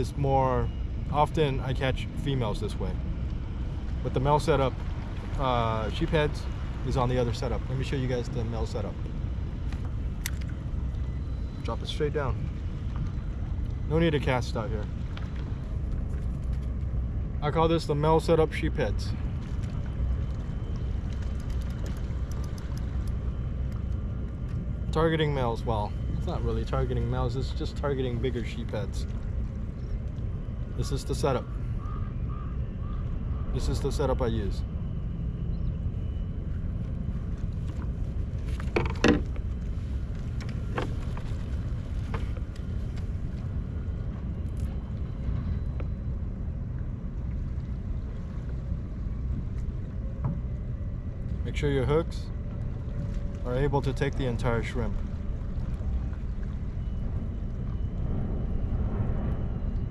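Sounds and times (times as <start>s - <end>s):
low rumble on open water: 0.0s - 59.9s
faint light ticks: 19.4s - 24.6s
fishing tackle clicking and knocking: 38.6s - 39.4s.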